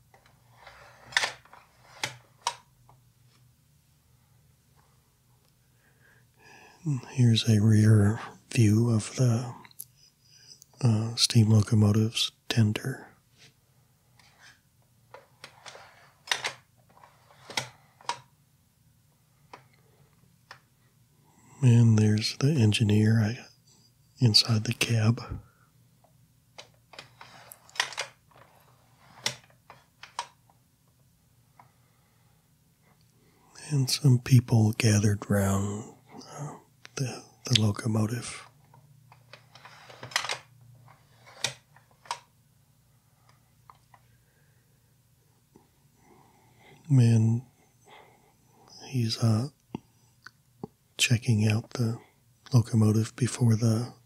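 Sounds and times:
faint low hum: 0.0s - 54.0s.

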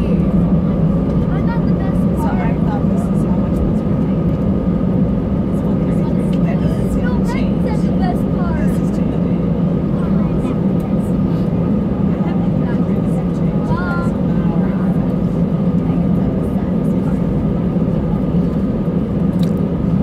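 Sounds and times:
aircraft engines idling hum: 0.0s - 20.0s
high engine whine: 0.0s - 20.0s.

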